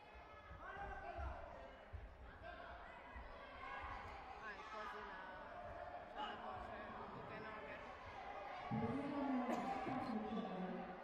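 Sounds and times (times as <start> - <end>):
indistinct voices in hall: 0.2 - 11.0.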